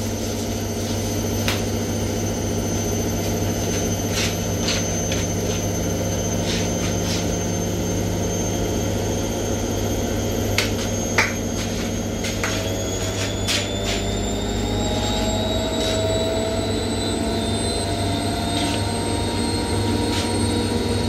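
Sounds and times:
washing machine drum spinning: 0.0 - 21.0.

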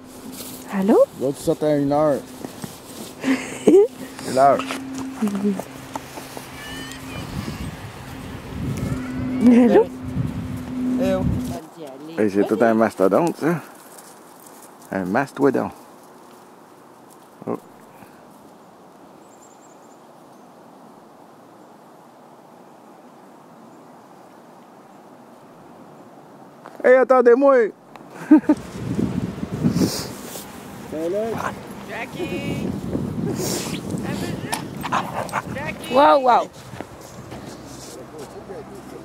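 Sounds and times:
faint outdoor hiss: 0.0 - 39.0
low grunt: 8.7 - 9.9
dogs barking: 31.2 - 31.9, 34.4 - 36.1.

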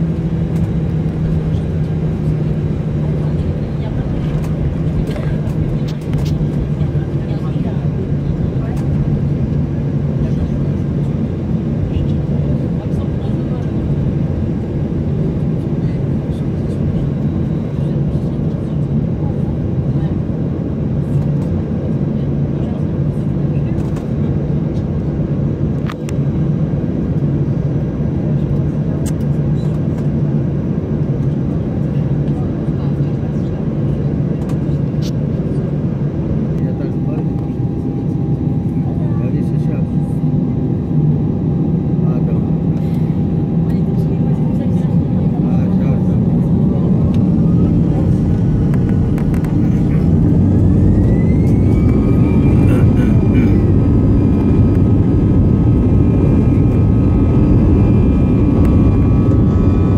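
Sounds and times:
rising engine whine: 34.0 - 59.9
jet engines spooling up: 45.2 - 59.9.

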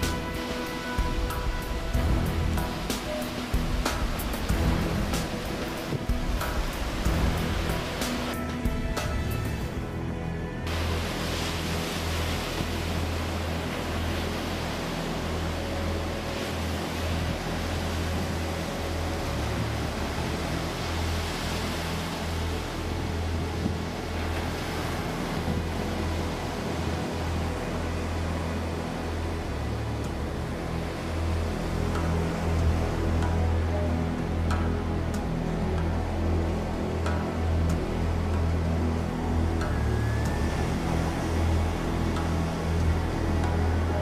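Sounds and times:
ocean surf breaking: 0.0 - 9.8, 10.7 - 33.2
wind rumble on microphone: 0.0 - 44.0.

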